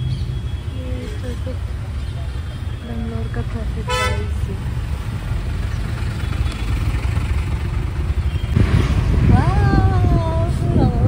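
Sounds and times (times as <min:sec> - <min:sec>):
small engine rumbling: 0:00.0 - 0:11.0.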